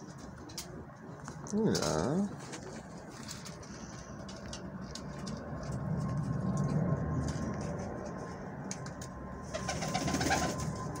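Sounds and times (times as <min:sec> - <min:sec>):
pigeon cooing: 0:09.5 - 0:10.6.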